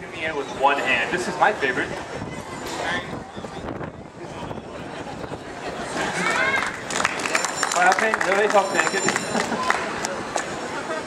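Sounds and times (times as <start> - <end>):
wind on microphone: 0.0 - 7.1
faint indistinct voices: 0.0 - 11.0.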